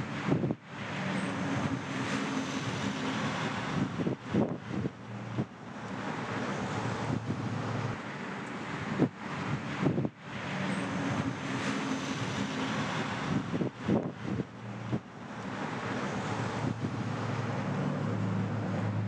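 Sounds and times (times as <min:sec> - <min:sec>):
wind blowing across microphone: 0:00.0 - 0:19.0.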